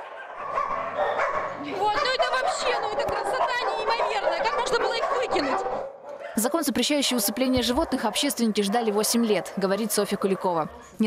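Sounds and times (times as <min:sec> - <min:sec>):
dogs barking and yelping: 0:00.0 - 0:11.0.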